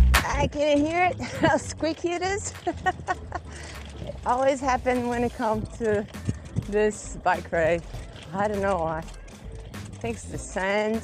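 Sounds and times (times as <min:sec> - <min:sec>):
bicycle rumbling on brick pavers: 0:00.0 - 0:11.0.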